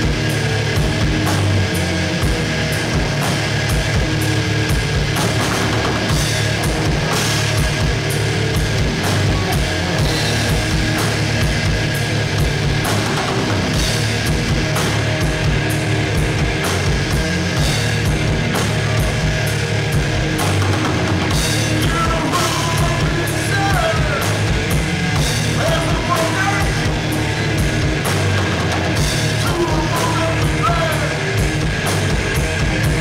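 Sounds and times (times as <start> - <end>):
bass guitar: 0.0 - 33.0
distorted electric guitars: 0.0 - 33.0
drum kit beat: 0.0 - 33.0.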